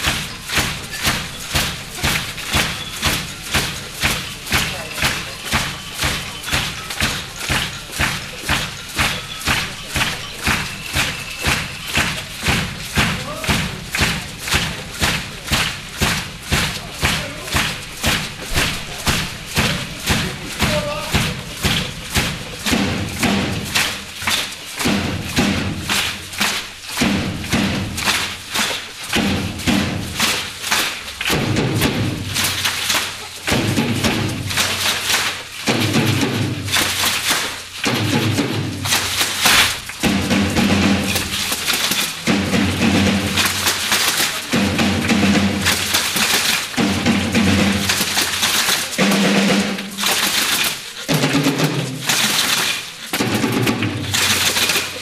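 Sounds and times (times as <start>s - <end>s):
drum kit strokes: 0.0s - 55.0s.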